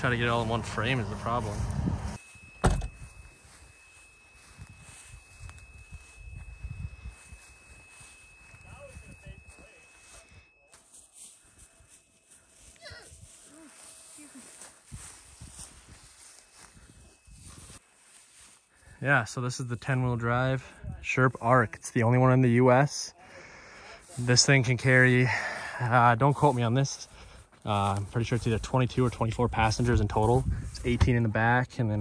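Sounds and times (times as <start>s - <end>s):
thin high whine: 0.0s - 12.8s
wind rumbling on microphone: 1.4s - 2.2s, 4.4s - 9.5s, 14.9s - 17.8s, 29.4s - 31.2s.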